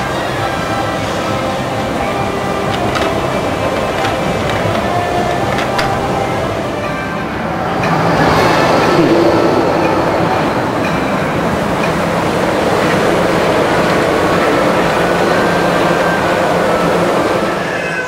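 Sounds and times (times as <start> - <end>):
faint steady tones: 0.0 - 18.0
monorail train rumbling: 0.0 - 18.0.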